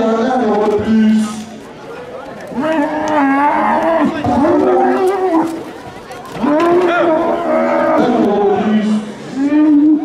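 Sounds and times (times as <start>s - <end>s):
bull bellowing: 2.5s - 5.6s, 6.4s - 8.5s.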